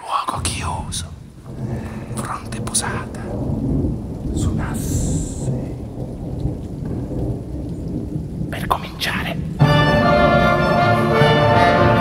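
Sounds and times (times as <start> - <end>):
rain: 0.0 - 12.0
thunder rumbling: 0.3 - 12.0.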